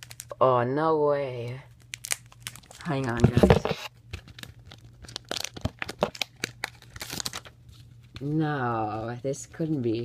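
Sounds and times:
packaging crinkling and tearing: 0.0s - 0.4s, 1.7s - 8.3s.

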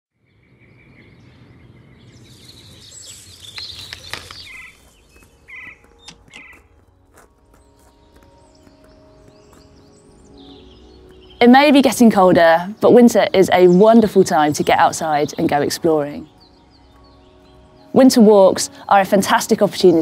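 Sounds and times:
birds chirping: 0.1s - 20.0s
soft music: 3.9s - 20.0s.

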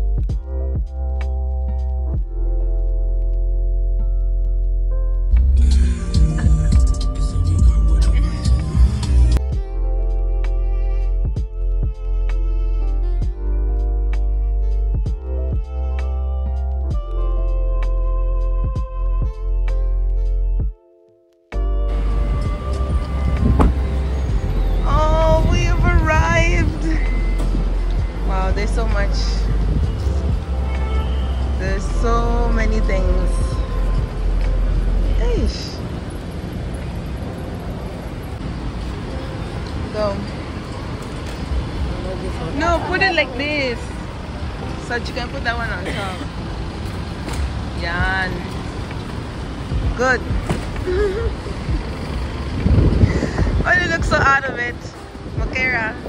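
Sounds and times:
idling cars and traffic rumble: 0.0s - 20.7s, 21.6s - 56.0s
wind buffeting microphone: 22.2s - 45.5s, 46.3s - 56.0s
person humming: 50.8s - 51.4s.

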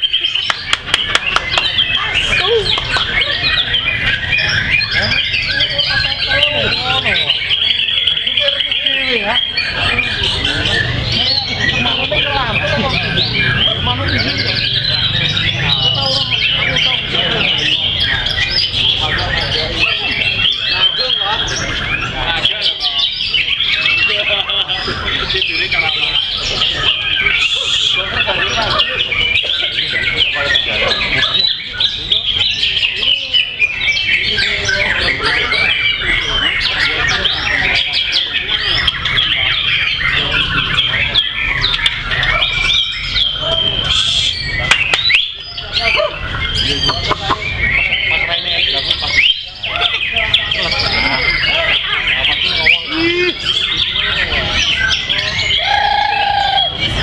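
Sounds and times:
other caged birds singing: 0.0s - 57.0s
songbird whistling and trilling: 0.0s - 57.0s.

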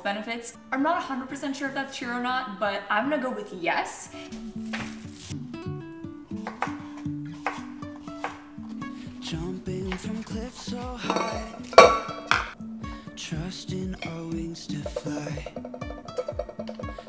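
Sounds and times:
background music with steady beat: 4.0s - 17.0s
dishes and utensils clinking: 11.0s - 12.6s, 14.8s - 17.0s.

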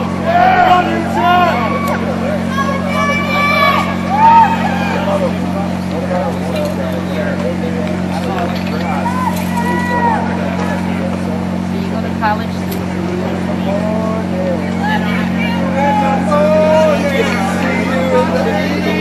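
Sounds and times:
crowd voices talking: 0.0s - 19.0s
generator engine drone: 0.0s - 19.0s.

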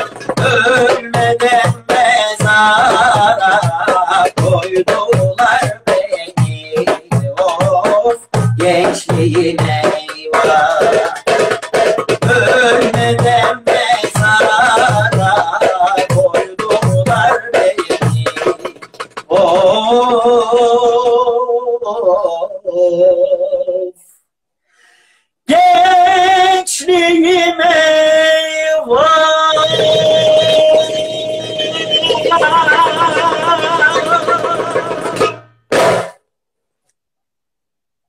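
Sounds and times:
man singing with vibrato: 0.0s - 24.2s, 25.4s - 35.5s
hand drum strokes: 29.6s - 36.2s.

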